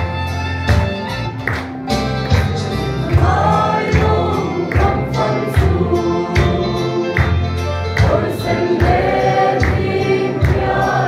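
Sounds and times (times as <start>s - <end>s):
mixed choir singing a hymn: 3.0s - 11.0s.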